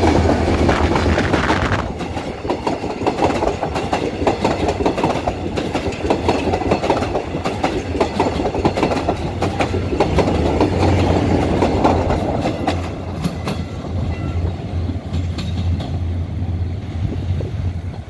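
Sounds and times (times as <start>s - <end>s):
train wheels clattering: 0.0s - 16.2s.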